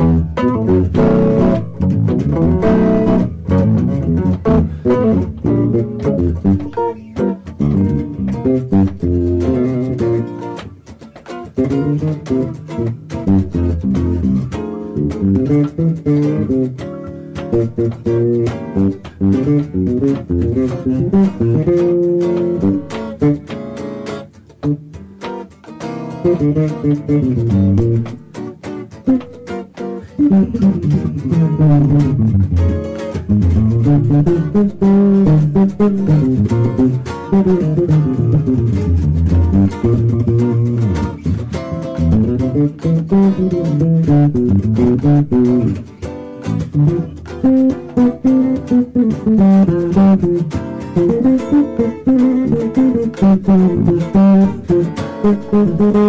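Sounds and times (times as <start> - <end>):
walking electric bass line: 0.0 - 25.2, 26.0 - 56.0
electric guitar notes: 0.0 - 56.0.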